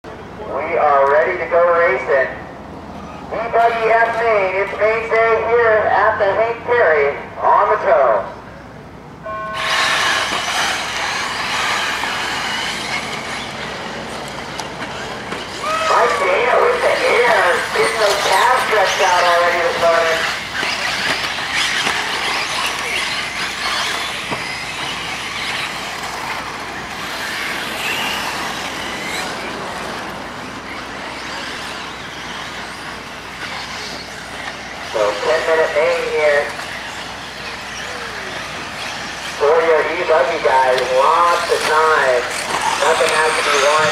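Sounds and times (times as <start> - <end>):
rc car motors and tyres: 9.2 - 43.9
man speaking: 39.4 - 43.9.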